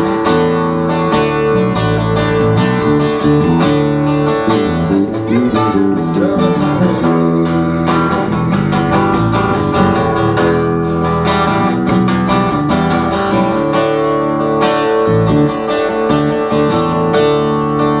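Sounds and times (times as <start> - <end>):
acoustic guitar strumming: 0.0 - 18.0
electric bass line: 0.0 - 18.0.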